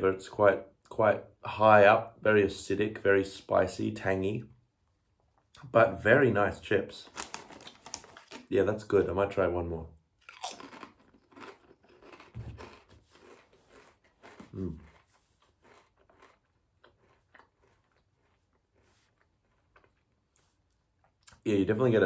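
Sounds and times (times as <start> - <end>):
potato chip crunching: 7.0 - 8.6, 10.2 - 20.5
person humming mm: 14.5 - 14.9.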